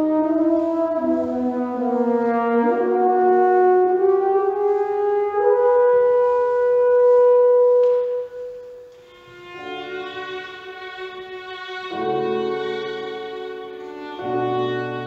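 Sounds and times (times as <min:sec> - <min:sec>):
bassoon: 0:00.0 - 0:15.0
french horn: 0:00.0 - 0:15.0.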